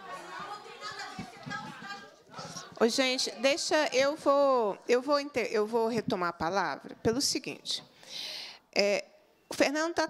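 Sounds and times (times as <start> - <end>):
murmur of voices: 0.0 - 5.3.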